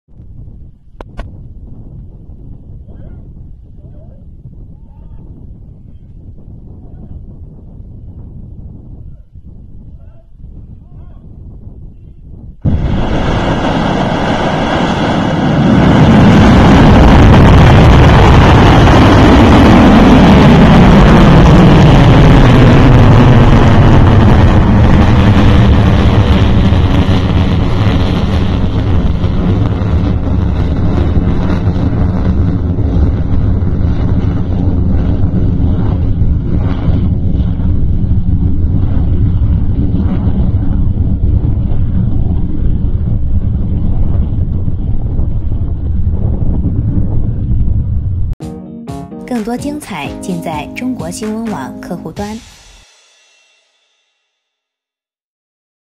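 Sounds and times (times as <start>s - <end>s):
rocket engine rumble: 0.1s - 48.4s.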